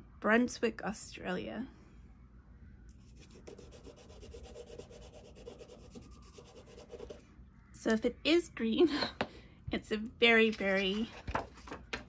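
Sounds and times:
pastel stick scratching on paper: 3.0s - 7.2s.

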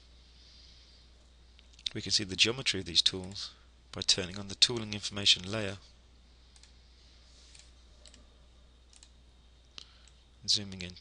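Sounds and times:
low steady hum: 0.0s - 11.0s
computer mouse clicks: 8.9s - 9.2s.

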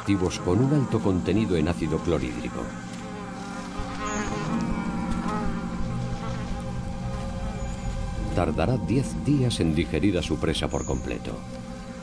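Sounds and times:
fly buzzing: 0.0s - 8.5s, 10.7s - 12.0s.

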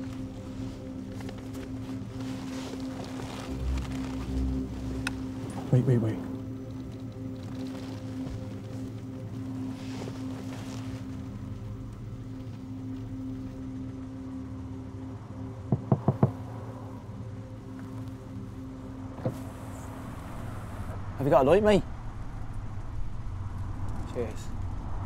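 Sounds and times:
low steady hum: 0.0s - 25.0s
knuckles knocking on car window: 15.7s - 16.4s.

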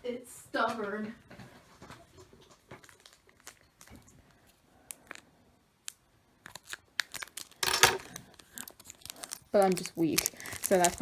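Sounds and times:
plastic foil wrapper crinkling: 2.6s - 11.0s
foil wrapper ripping: 2.8s - 4.0s, 6.4s - 11.0s.

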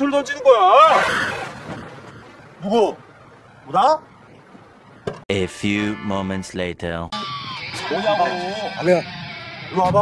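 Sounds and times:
man speaking: 5.3s - 7.2s.

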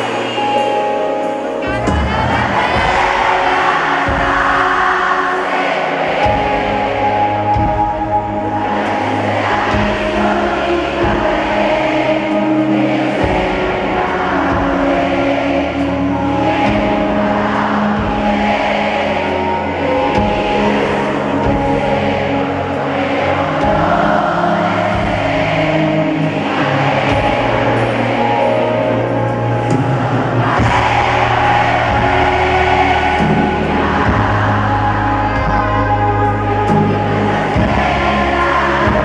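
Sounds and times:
crowd singing along: 0.0s - 39.0s
live pop band music: 0.0s - 39.0s.

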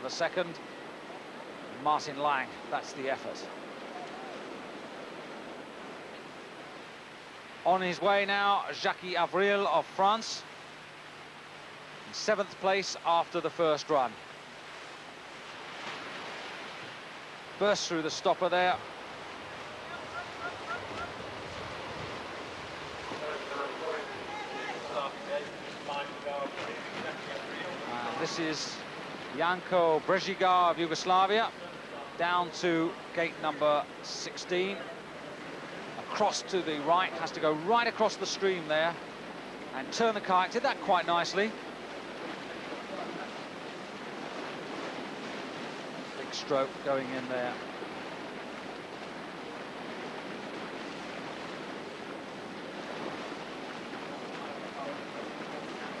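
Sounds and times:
whitewater rushing: 0.0s - 56.0s
man's voice: 29.4s - 34.9s.

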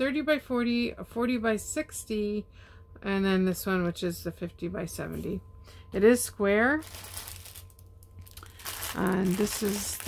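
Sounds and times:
plastic packaging crinkling: 6.8s - 10.0s.

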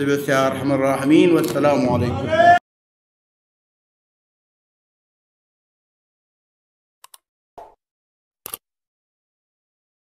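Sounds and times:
quick clicks: 8.4s - 8.6s.

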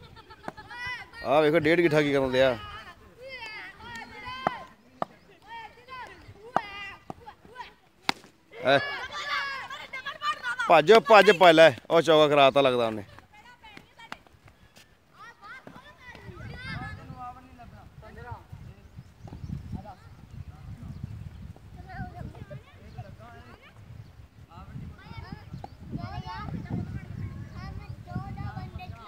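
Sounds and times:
cricket bat striking ball: 8.0s - 8.4s.

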